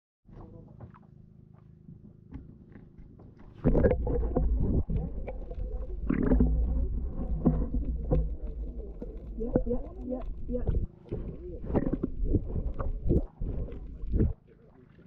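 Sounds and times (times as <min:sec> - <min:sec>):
underwater rumble of moving water: 0:00.3 - 0:15.0
muffled voices: 0:14.0 - 0:15.0.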